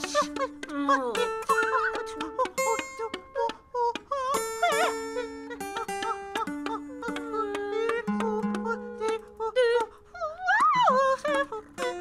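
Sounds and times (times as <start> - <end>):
acoustic guitar notes: 0.0 - 12.0.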